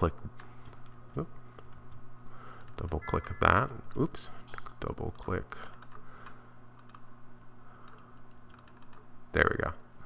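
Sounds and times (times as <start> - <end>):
steady low hum: 0.0 - 10.0
computer mouse clicks: 4.6 - 6.0, 6.8 - 7.1, 7.8 - 9.1.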